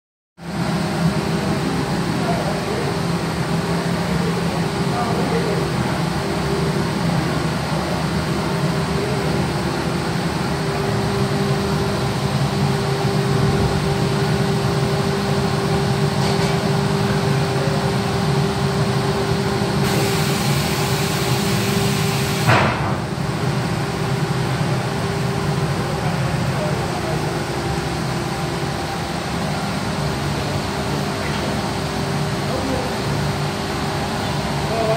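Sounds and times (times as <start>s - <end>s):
sharp knock: 22.5s - 23.0s.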